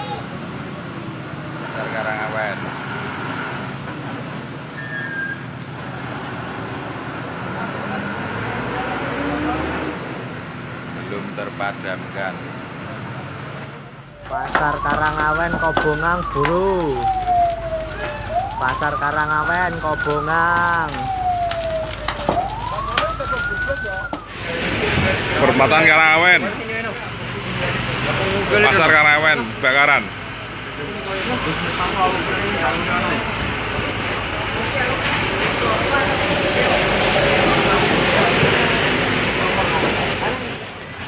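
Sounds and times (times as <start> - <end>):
vehicle engines idling: 5.4 - 41.0
low engine rumble: 10.1 - 41.0
wailing siren: 14.1 - 26.9, 30.8 - 40.6
sharp cracks: 14.2 - 24.5.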